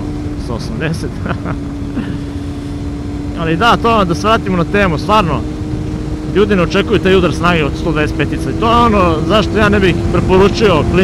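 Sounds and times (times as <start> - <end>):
motorcycle engine cruising: 0.0 - 11.0
wind and road rumble: 0.0 - 11.0.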